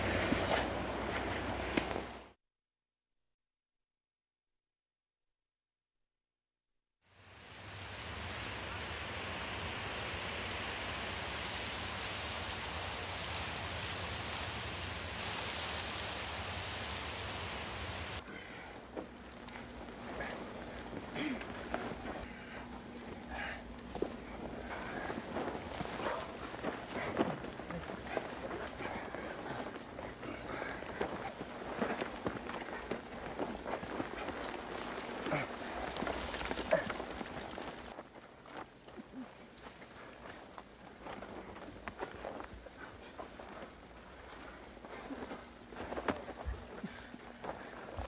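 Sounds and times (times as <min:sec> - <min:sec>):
scuffing footsteps on dirt: 0:00.0 - 0:02.2, 0:18.9 - 0:48.0
rustle of roots and dry grass: 0:07.3 - 0:23.2, 0:23.9 - 0:48.0.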